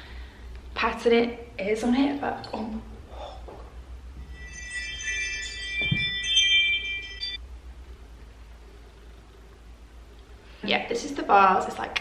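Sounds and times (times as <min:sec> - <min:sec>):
high chime-like tones: 0:04.2 - 0:07.4.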